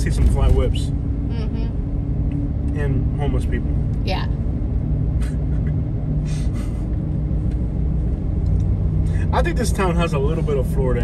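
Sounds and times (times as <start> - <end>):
car engine drone: 0.0 - 11.0.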